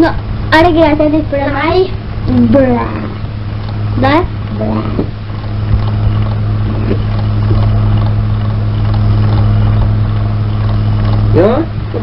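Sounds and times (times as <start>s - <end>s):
low electrical hum: 0.0s - 12.0s
steady rushing noise: 0.0s - 12.0s.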